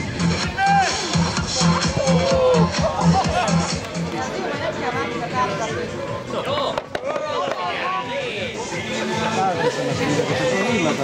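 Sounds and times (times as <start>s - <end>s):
background music: 0.0s - 11.0s
people talking: 3.0s - 11.0s.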